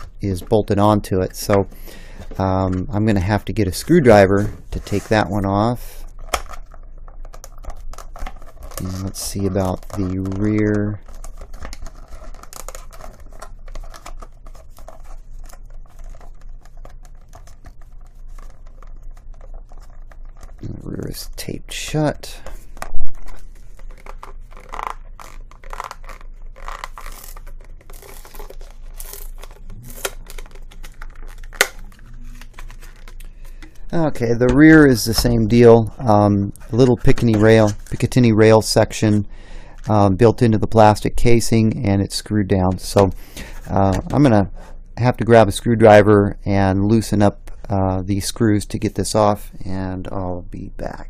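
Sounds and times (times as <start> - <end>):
plastic packaging crackling: 0.0 - 20.8, 22.2 - 35.7
plastic crinkling and scraping: 0.0 - 38.8
tape peeling off plastic: 6.1 - 20.7, 22.7 - 33.6.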